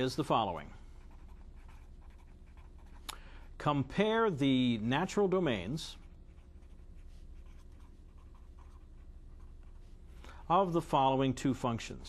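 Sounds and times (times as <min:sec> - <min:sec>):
steady low hum: 0:00.0 - 0:12.0
marker writing on paper: 0:01.0 - 0:03.0, 0:06.0 - 0:10.0.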